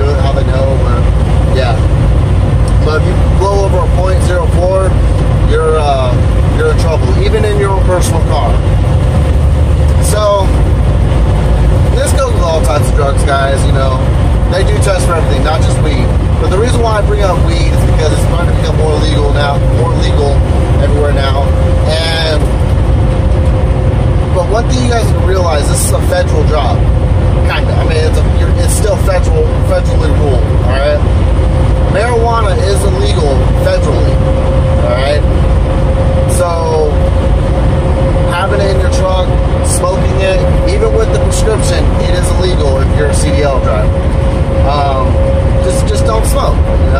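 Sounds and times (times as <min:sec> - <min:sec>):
man talking: 0:00.0 - 0:01.9, 0:02.6 - 0:08.7, 0:10.0 - 0:10.7, 0:11.9 - 0:22.6, 0:24.3 - 0:31.1, 0:31.8 - 0:34.2, 0:34.8 - 0:35.4, 0:36.2 - 0:37.1, 0:38.1 - 0:44.0, 0:44.6 - 0:46.9
steady tone: 0:00.0 - 0:46.9
truck engine and road rumble: 0:00.0 - 0:46.9.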